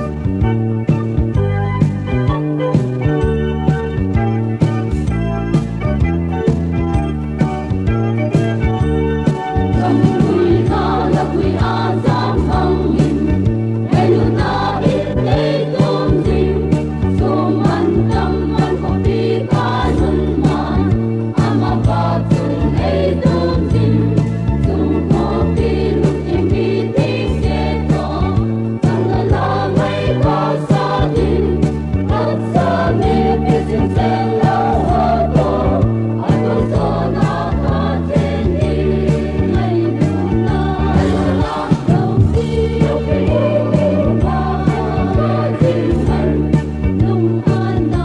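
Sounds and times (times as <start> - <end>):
instrumental backing with beat: 0.0 - 48.0
choir singing gospel: 9.6 - 48.0.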